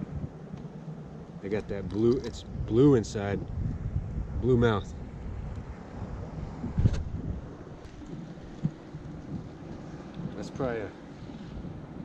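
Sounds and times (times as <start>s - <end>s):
choppy sea: 0.0s - 12.0s
wind buffeting microphone: 0.0s - 12.0s.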